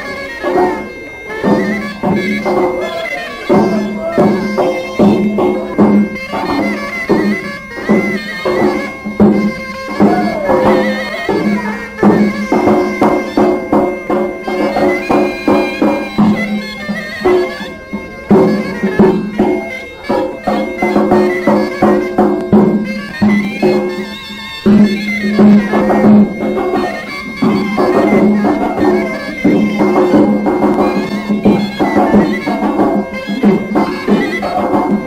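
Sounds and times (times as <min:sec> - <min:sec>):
reedy shawm melody: 0:00.0 - 0:35.0
bass drum beating dance rhythm: 0:03.5 - 0:24.0, 0:24.6 - 0:35.0.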